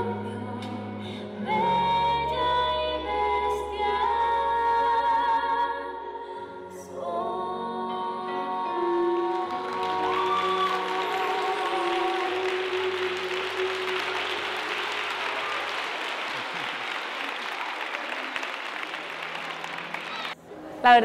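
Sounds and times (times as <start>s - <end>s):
background music with singing: 0.0s - 16.3s
crowd applause: 9.2s - 20.4s.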